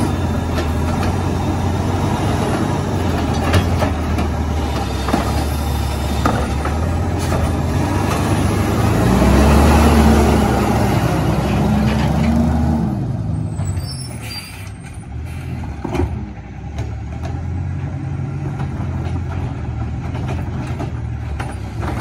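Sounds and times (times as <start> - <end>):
garbage truck engine revving: 0.0 - 13.8
faint high brake squeal: 13.4 - 15.5
air brake burst: 13.7 - 15.6.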